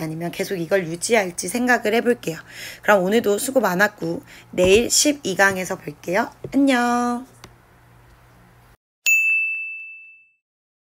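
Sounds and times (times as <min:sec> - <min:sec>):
bright bell chime: 0:09.0 - 0:10.4.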